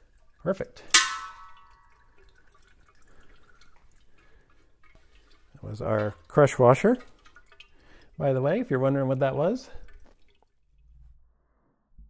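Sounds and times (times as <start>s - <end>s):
faint trickle of draining oil: 0.0s - 11.7s.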